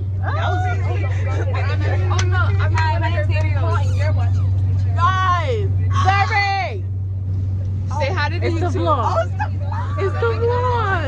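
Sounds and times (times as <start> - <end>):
bus engine drone: 0.0 - 11.0
women talking and exclaiming: 0.2 - 6.9, 7.7 - 11.0.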